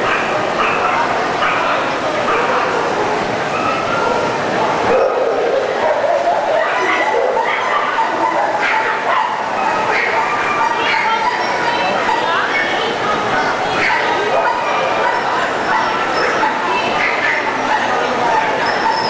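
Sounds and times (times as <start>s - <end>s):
crowd chatter: 0.0s - 19.0s
dogs yipping and barking: 0.0s - 19.0s.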